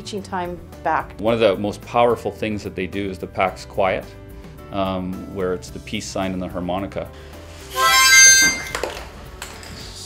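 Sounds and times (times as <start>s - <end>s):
harmonica chord: 7.5s - 9.0s.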